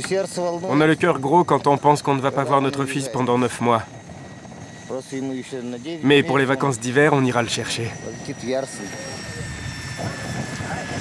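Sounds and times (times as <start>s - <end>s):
helicopter running: 0.0s - 11.0s.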